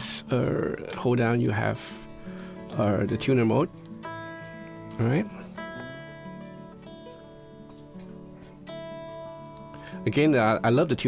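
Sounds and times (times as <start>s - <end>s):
electric guitar strings plucked: 0.0s - 11.0s.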